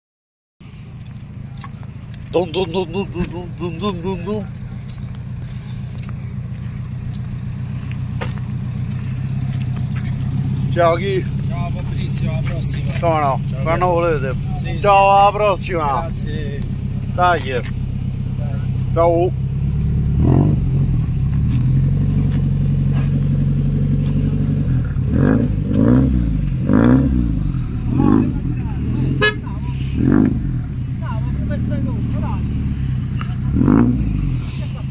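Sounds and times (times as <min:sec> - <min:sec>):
car engine idling: 0:00.6 - 0:34.9
light metallic jingles: 0:00.8 - 0:14.8.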